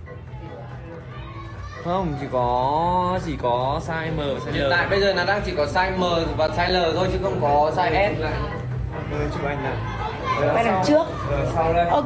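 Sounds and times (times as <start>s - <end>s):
faint background talk: 0.0s - 12.0s.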